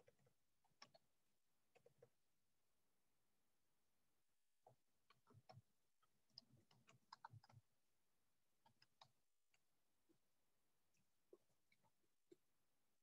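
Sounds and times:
faint irregular clicks and taps: 0.0 - 2.2, 4.5 - 7.8, 8.5 - 10.3, 10.9 - 12.6.

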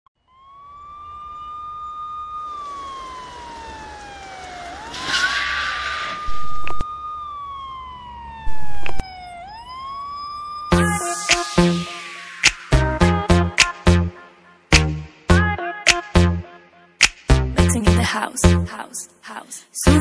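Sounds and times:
siren wailing: 0.2 - 14.7.

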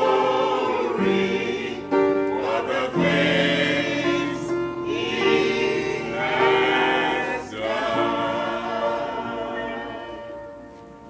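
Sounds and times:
church choir singing gospel: 0.0 - 11.0.

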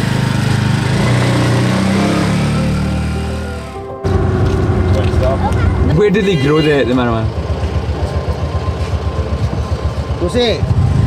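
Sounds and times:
auto-rickshaw engine idling: 0.0 - 11.0.

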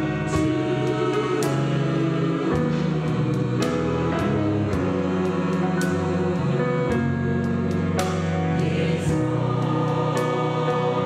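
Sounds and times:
choir singing a hymn: 0.0 - 11.0
drums: 0.0 - 11.0
organ: 0.0 - 11.0
piano: 0.0 - 11.0.

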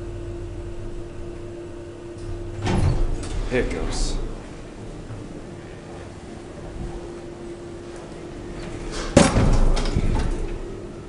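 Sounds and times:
elevator loud bang: 0.0 - 5.0, 8.7 - 10.9
elevator rumbling and rattling: 0.0 - 11.0.

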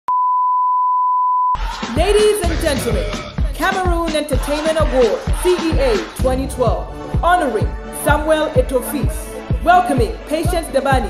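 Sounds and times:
music: 1.6 - 11.0.

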